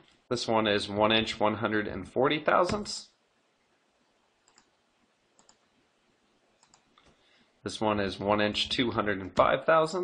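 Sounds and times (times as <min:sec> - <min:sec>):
computer mouse clicks: 0:04.4 - 0:04.8, 0:05.4 - 0:05.7, 0:06.6 - 0:07.2.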